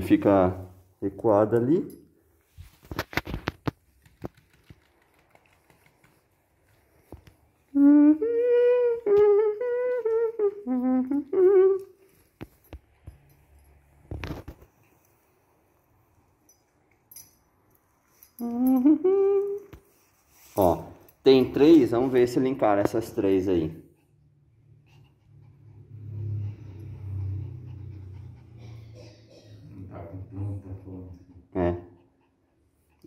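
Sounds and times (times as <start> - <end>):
person humming a tune: 7.7 - 12.0, 18.4 - 19.8.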